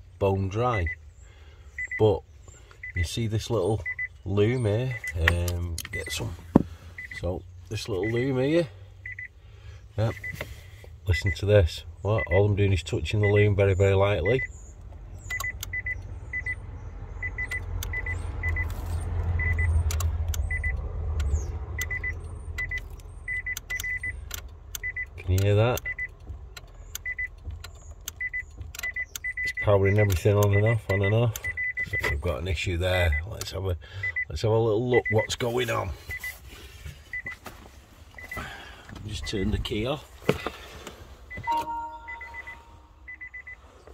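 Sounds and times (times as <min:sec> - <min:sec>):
car warning chime beeps: 0:00.3 - 0:06.4, 0:07.0 - 0:09.4, 0:10.0 - 0:18.7, 0:19.3 - 0:36.4, 0:37.1 - 0:37.4, 0:38.2 - 0:39.8, 0:41.3 - 0:43.7
sharp relay clicks: 0:15.2 - 0:15.8, 0:19.5 - 0:32.0
low hum: 0:41.4 - 0:43.2
warning chime high pips: 0:41.5 - 0:43.0.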